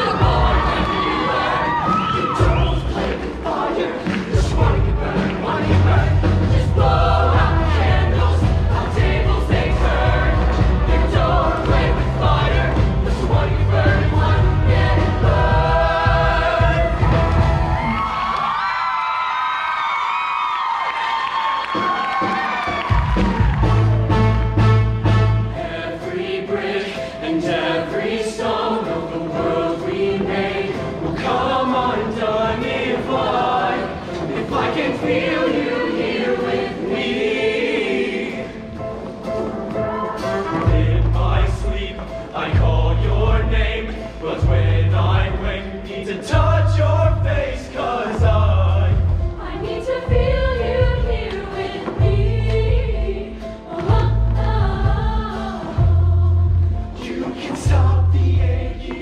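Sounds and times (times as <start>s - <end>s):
choir singing in harmony: 0.0s - 18.3s, 24.1s - 59.0s.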